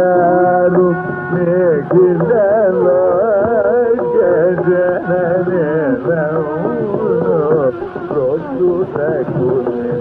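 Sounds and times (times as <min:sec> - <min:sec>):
hand drum strokes: 0:00.0 - 0:10.0.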